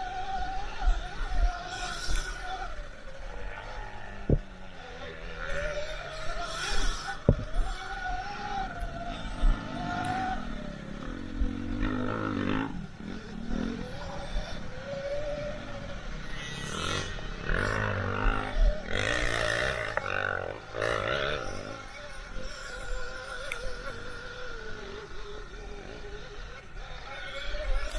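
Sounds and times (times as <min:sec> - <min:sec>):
drivetrain and tyre noise: 0:00.0 - 0:27.9
electric motor whine: 0:00.0 - 0:27.9.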